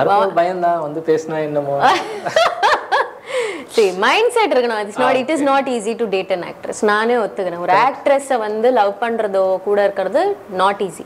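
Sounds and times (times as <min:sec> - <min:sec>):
woman laughing: 0:01.8 - 0:03.6
person talking: 0:03.7 - 0:05.8.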